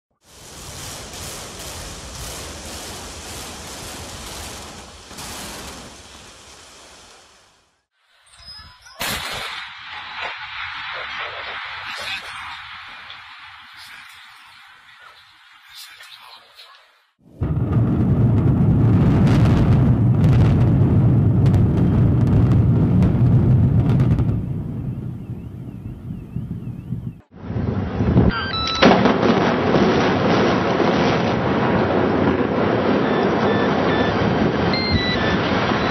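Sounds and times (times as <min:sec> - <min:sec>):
sharp cracks: 0:00.2 - 0:07.8, 0:09.0 - 0:15.1
building demolition rumble: 0:17.3 - 0:25.3
high whistle-like tone: 0:34.7 - 0:35.9.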